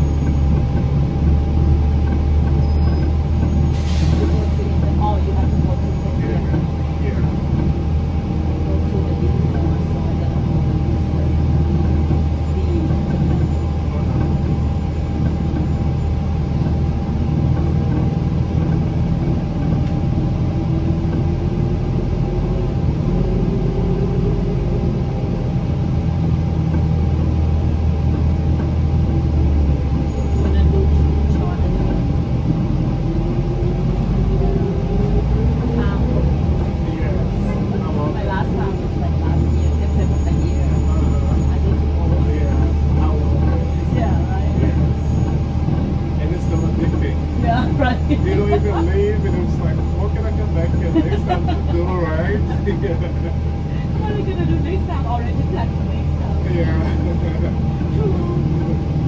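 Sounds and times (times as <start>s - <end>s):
bus engine drone: 0.0s - 59.0s.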